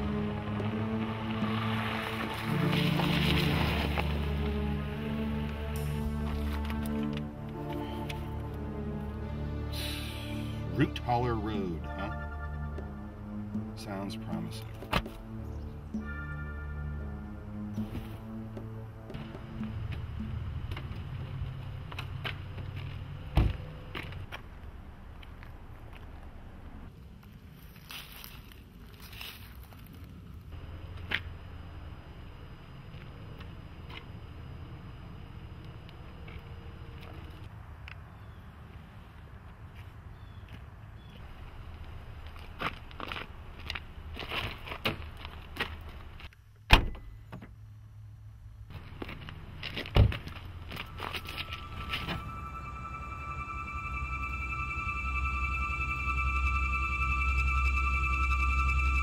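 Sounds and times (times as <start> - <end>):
eerie music tones: 0.0 - 24.1, 50.2 - 59.0.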